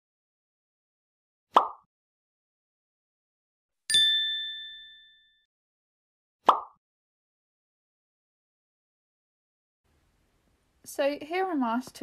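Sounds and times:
bright bell-like ding: 0:03.9 - 0:05.5.

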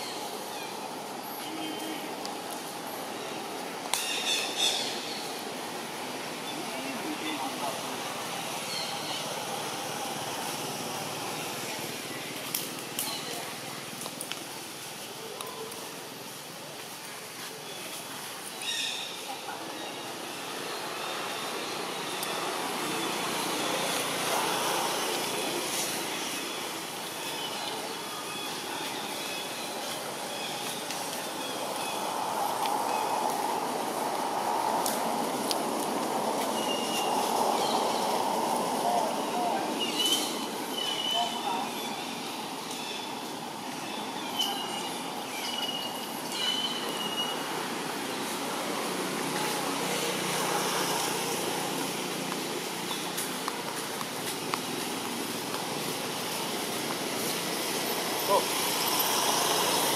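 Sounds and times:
outdoor background noise: 0:00.0 - 0:59.9.

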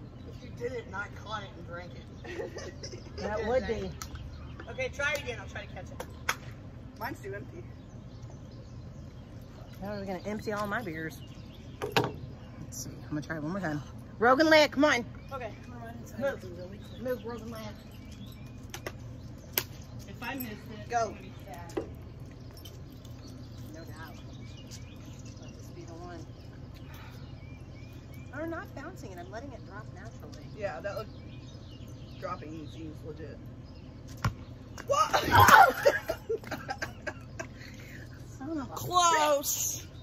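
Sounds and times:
low outdoor rumble: 0:00.0 - 0:40.0.

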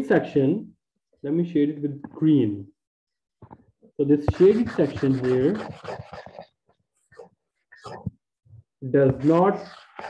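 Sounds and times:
man speaking: 0:04.0 - 0:05.7, 0:08.8 - 0:09.8.

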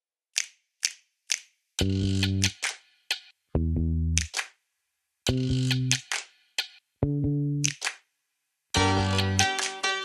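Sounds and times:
sharp count-in clicks: 0:00.3 - 0:03.4, 0:04.1 - 0:04.6, 0:05.3 - 0:06.8, 0:07.6 - 0:08.0, 0:09.1 - 0:09.9.

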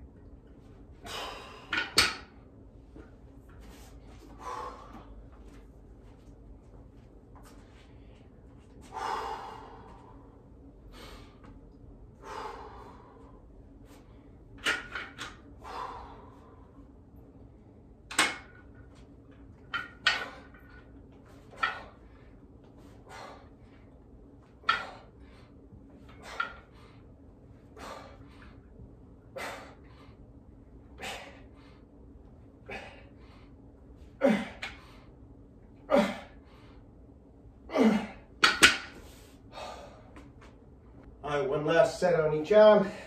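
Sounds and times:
hard exhales: 0:01.0 - 0:01.9, 0:04.2 - 0:05.2, 0:08.8 - 0:11.5, 0:12.2 - 0:13.4, 0:15.6 - 0:16.8, 0:22.9 - 0:23.7, 0:27.8 - 0:28.6, 0:29.4 - 0:30.2, 0:39.0 - 0:40.2
metal dumbbell plates clanking: 0:19.7 - 0:20.8, 0:21.5 - 0:22.0.

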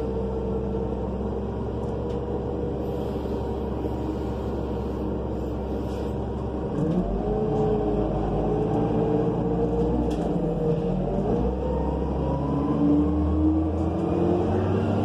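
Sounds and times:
bus engine accelerating: 0:00.0 - 0:15.0.

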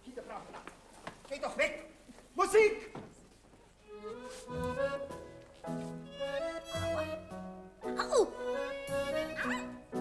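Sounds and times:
violin melody: 0:03.8 - 0:10.0
small band playing light tune: 0:03.9 - 0:10.0.

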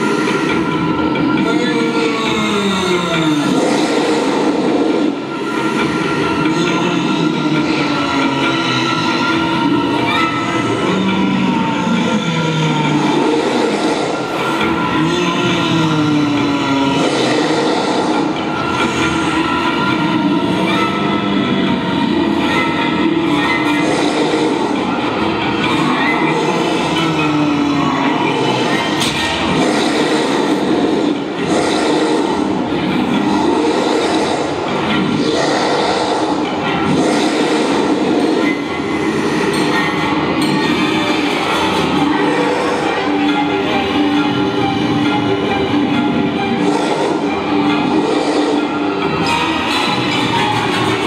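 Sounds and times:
dinosaur roars over sound system: 0:00.0 - 0:51.0.

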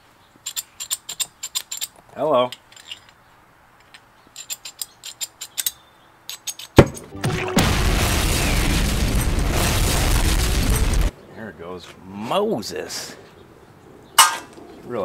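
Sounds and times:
cartoon explosion rumble: 0:07.1 - 0:11.1.

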